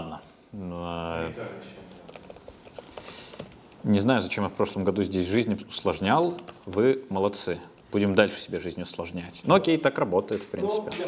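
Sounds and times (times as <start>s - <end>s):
computer keyboard typing: 1.9s - 4.1s, 5.7s - 8.0s.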